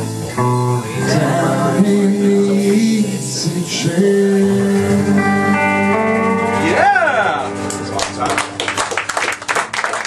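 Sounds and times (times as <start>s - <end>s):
guitar chord ringing: 0.0s - 8.7s.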